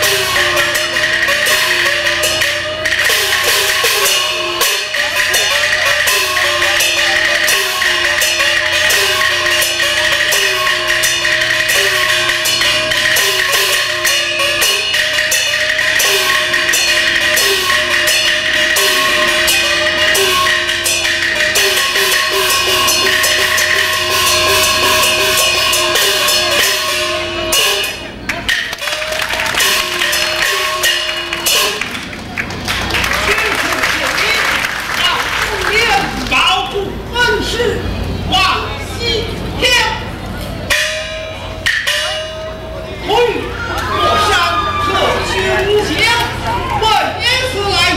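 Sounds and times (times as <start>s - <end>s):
drums gongs and cymbals: 0.0s - 32.3s, 36.9s - 47.9s.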